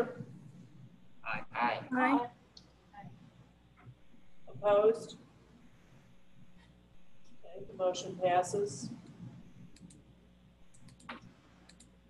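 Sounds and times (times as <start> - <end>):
faint room hum: 0.0 - 12.0
sharp little clicks: 9.0 - 10.0, 10.6 - 12.0.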